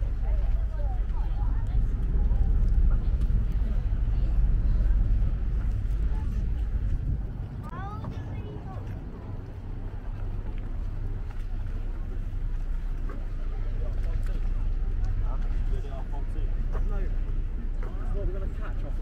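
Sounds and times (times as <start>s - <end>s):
background chatter: 0.0s - 19.0s
boat engine rumbling: 0.0s - 19.0s.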